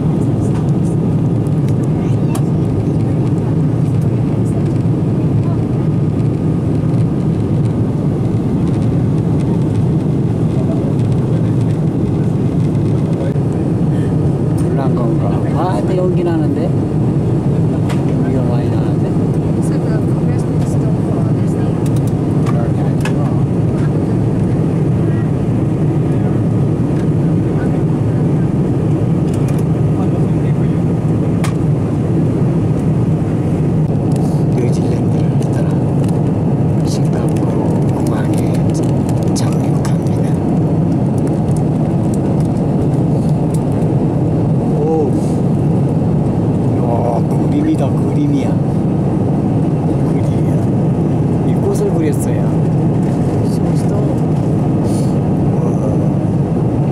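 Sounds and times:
jet airliner cabin noise: 0:00.0 - 0:56.9.

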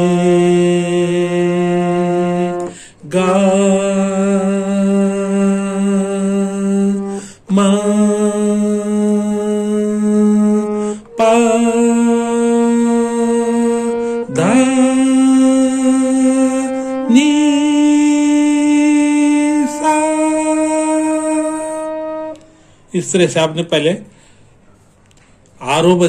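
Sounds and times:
harmonium playing held notes: 0:00.0 - 0:02.8, 0:09.3 - 0:22.6
person singing: 0:00.0 - 0:22.5.

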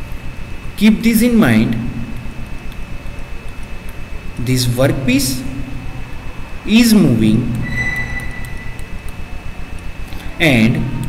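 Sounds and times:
low pulsing hum: 0:00.0 - 0:11.0
steady high whine: 0:00.0 - 0:11.0.

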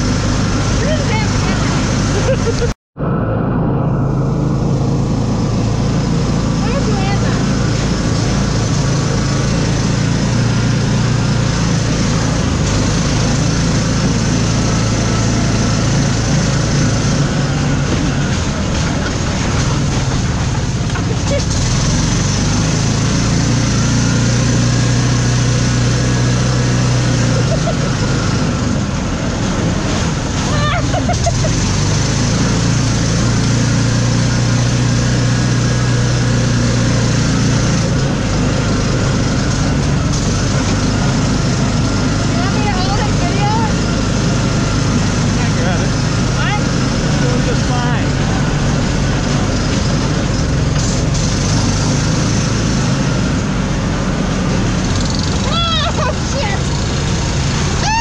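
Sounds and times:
buggy engine running: 0:00.0 - 0:58.0.

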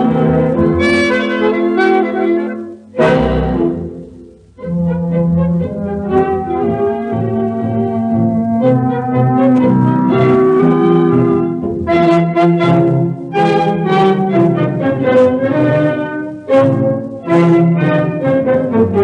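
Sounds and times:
dance orchestra playing tango: 0:00.0 - 0:19.0.

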